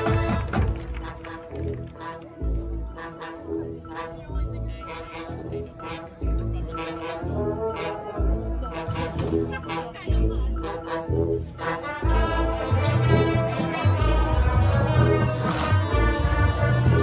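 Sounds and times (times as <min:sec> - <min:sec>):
marching percussion: 0:00.0 - 0:02.2
brass sustained chords: 0:00.0 - 0:17.0.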